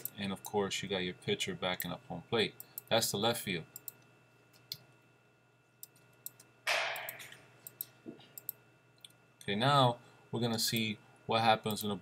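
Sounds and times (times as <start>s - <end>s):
computer mouse clicks: 5.8s - 9.2s.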